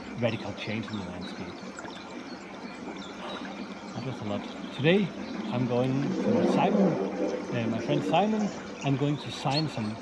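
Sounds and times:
faint bird calls: 0.0 - 10.0
water trickling: 0.0 - 10.0.

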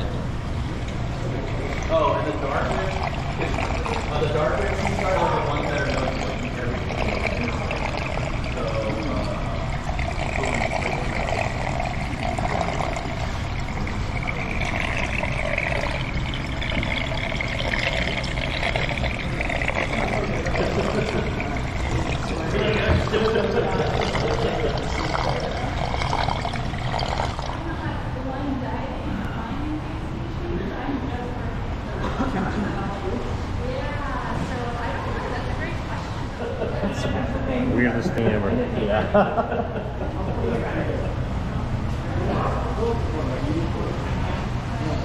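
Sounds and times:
water pouring into tank: 0.8 - 27.6.

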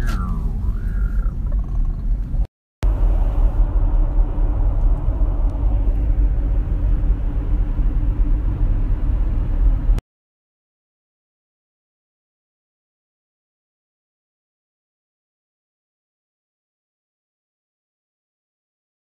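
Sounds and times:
car road noise rumble: 0.0 - 10.0.

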